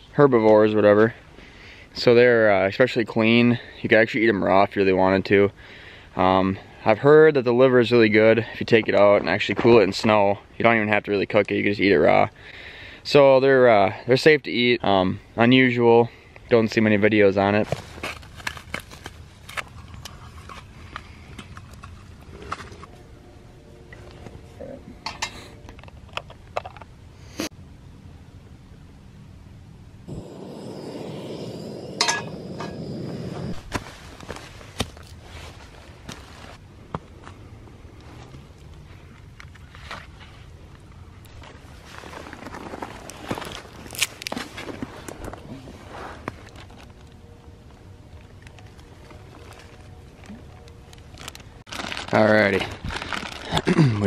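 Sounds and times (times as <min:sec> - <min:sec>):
steady rushing noise: 0:29.8 - 0:34.7.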